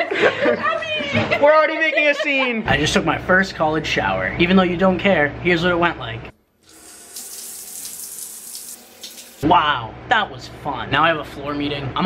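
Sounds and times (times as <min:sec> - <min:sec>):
shower water spraying: 0:06.6 - 0:09.4.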